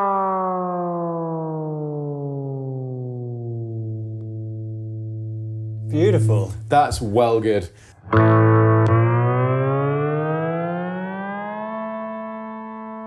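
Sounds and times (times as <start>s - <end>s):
electric guitar note gliding down: 0.0s - 7.0s, 8.0s - 13.0s.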